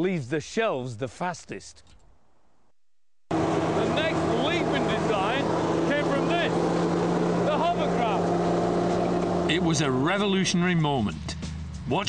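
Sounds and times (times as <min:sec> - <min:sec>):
hovercraft engine drone: 0:03.3 - 0:10.2
voices: 0:03.8 - 0:06.6, 0:07.4 - 0:08.4.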